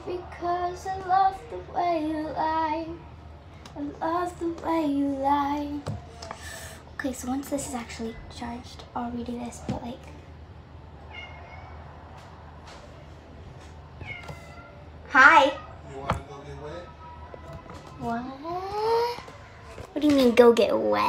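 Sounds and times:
cat meowing: 0:11.1 - 0:11.9, 0:14.0 - 0:15.8.

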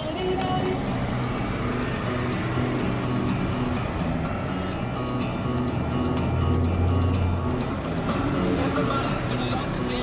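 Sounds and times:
car engine and road rumble: 0:00.0 - 0:10.0
music playing: 0:00.0 - 0:10.0.

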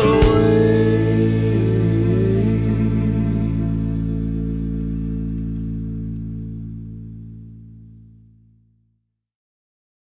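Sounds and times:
rock guitar and bass chord: 0:00.0 - 0:08.8.

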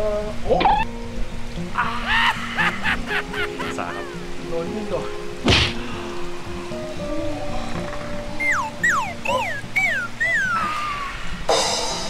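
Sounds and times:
background music of held notes: 0:00.0 - 0:12.0
quick falling-pitch sound effects: 0:00.5 - 0:00.9, 0:08.4 - 0:11.2
sharp thump: 0:05.4 - 0:05.8.

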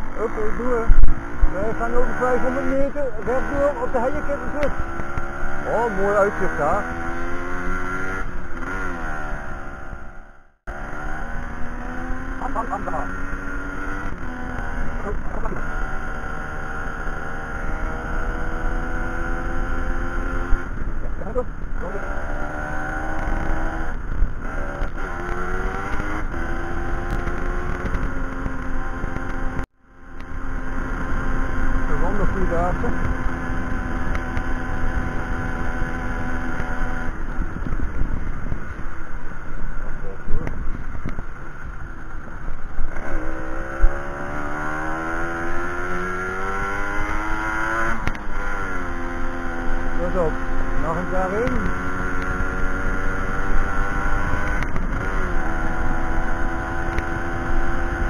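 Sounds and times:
moped engine revving: 0:00.0 - 0:58.0.

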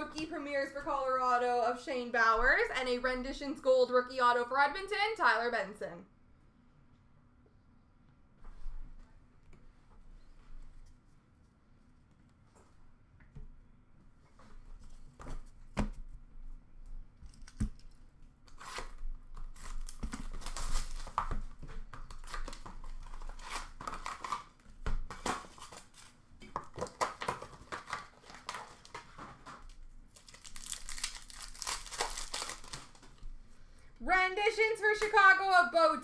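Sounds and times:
foil wrappers tearing and crinkling: 0:18.5 - 0:21.3, 0:22.1 - 0:24.6, 0:30.1 - 0:33.2.

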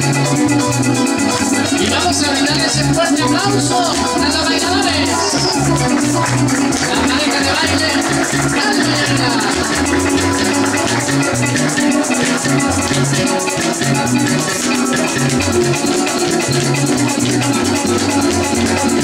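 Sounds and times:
maracas shaking: 0:00.0 - 0:19.0
plucked harp: 0:00.0 - 0:19.0.

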